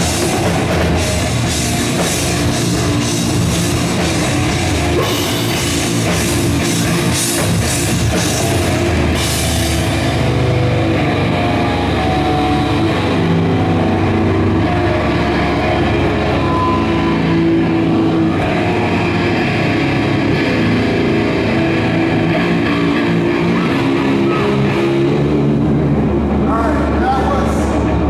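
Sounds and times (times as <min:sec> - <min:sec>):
live rock band playing: 0:00.0 - 0:28.0.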